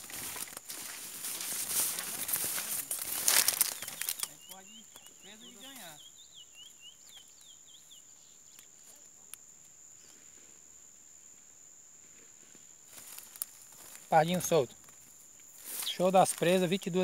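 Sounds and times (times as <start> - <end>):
high insect buzz: 0.0 - 17.0
finch chirping: 3.7 - 8.7.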